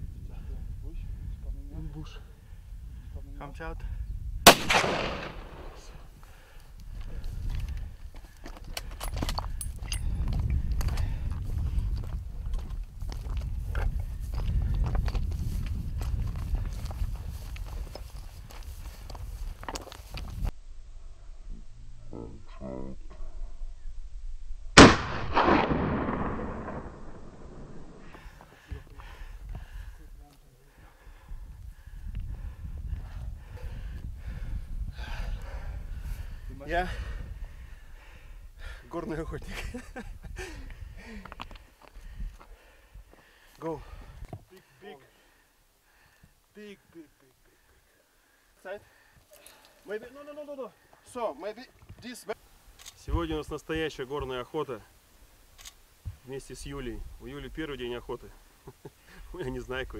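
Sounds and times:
wind buffeting microphone: 0:00.0 - 0:20.6, 0:24.9 - 0:44.5
hard breathing: 0:06.2 - 0:12.0, 0:28.0 - 0:39.0, 0:40.4 - 0:49.9
footsteps through dry grass: 0:10.0 - 0:20.5.

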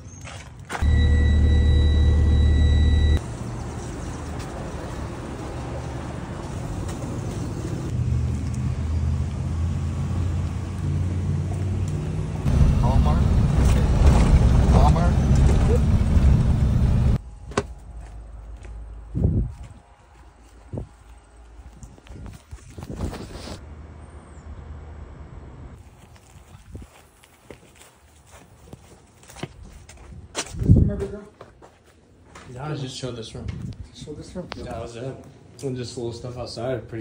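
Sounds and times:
faint high whine: 0:00.8 - 0:03.2
vehicle engine running: 0:00.8 - 0:17.2.

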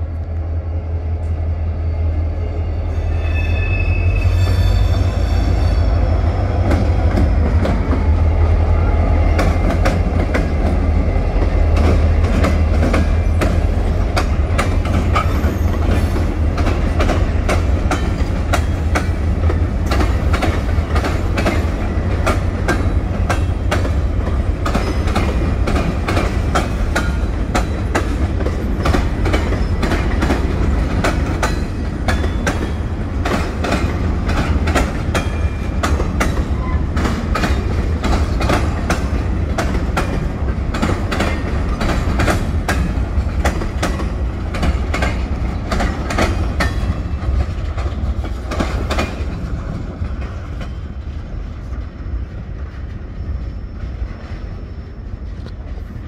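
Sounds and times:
freight train rumbling past: 0:00.0 - 0:56.0
wheels clicking over rail joints: 0:09.3 - 0:51.9.

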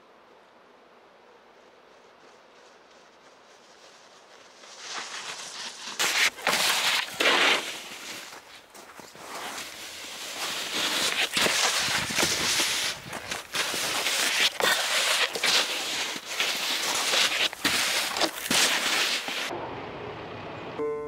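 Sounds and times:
snowboard scraping over snow: 0:02.6 - 0:19.5.

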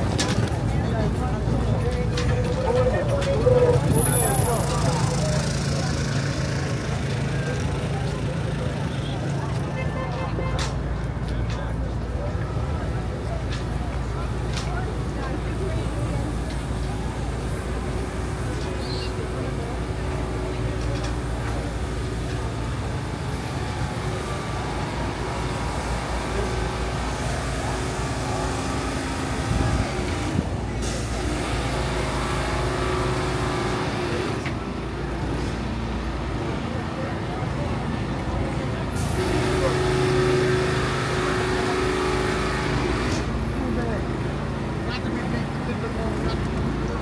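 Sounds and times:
pedestrians' voices: 0:00.0 - 0:47.0
vehicle engines idling and running: 0:00.0 - 0:47.0.

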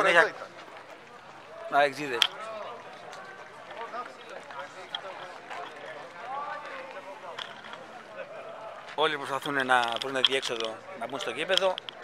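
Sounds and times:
distant crowd chatter: 0:00.0 - 0:12.0.

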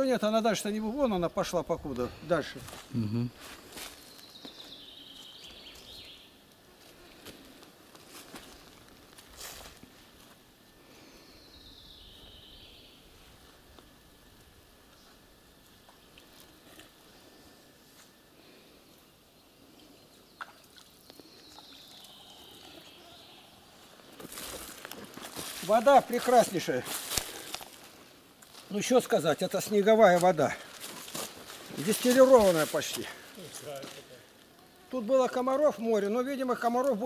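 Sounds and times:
songbird singing: 0:00.0 - 0:07.5, 0:10.9 - 0:17.6, 0:18.5 - 0:30.8
footsteps rustling: 0:01.9 - 0:06.0, 0:06.7 - 0:10.5, 0:23.7 - 0:35.0.

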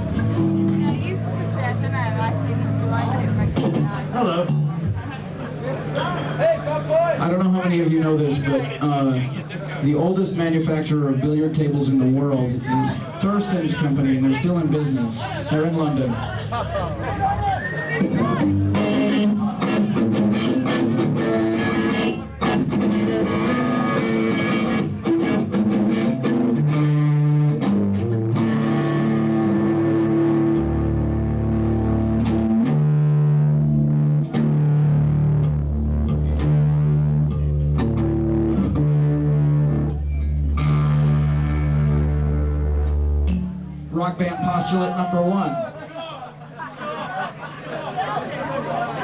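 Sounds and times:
electric guitar: 0:00.0 - 0:05.6, 0:18.0 - 0:43.9
heavy bass guitar: 0:00.0 - 0:09.2, 0:09.8 - 0:45.6.

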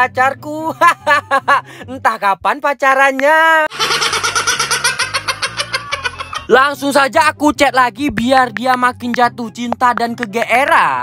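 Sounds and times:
toddler laughing: 0:03.8 - 0:06.5.

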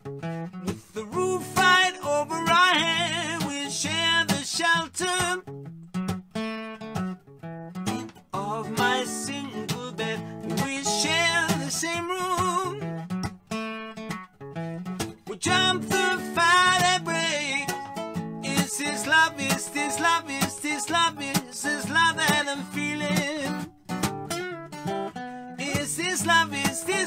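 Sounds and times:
strummed acoustic guitar: 0:00.0 - 0:27.0
man singing: 0:00.7 - 0:05.5, 0:07.9 - 0:12.9, 0:15.2 - 0:23.7, 0:25.3 - 0:27.0.

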